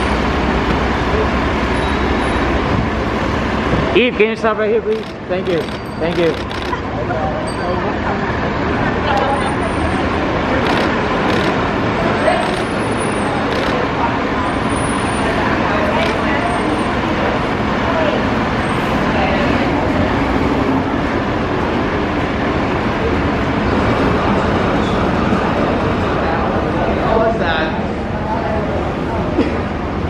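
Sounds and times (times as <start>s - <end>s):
city traffic noise: 0.0s - 30.0s
indistinct voices: 3.9s - 30.0s.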